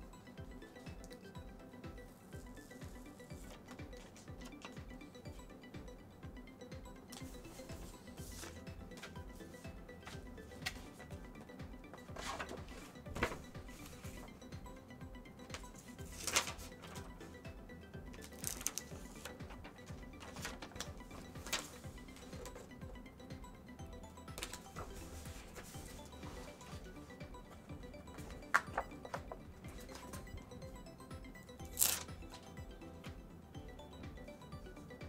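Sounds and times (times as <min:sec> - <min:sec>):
quiet background music: 0:00.0 - 0:35.0
paper rustling: 0:07.2 - 0:09.2, 0:12.1 - 0:14.3, 0:15.5 - 0:17.1, 0:18.2 - 0:19.4, 0:20.2 - 0:22.6, 0:24.4 - 0:26.8, 0:31.7 - 0:32.1.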